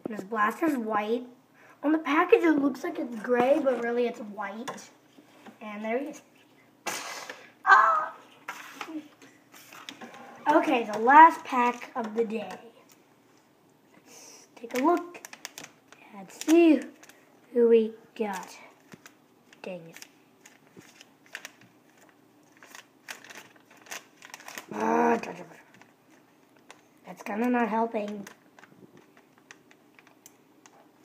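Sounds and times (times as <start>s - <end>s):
child exclaiming: 7.6s - 8.3s
plastic packet crinkling: 14.6s - 17.3s, 18.2s - 31.0s.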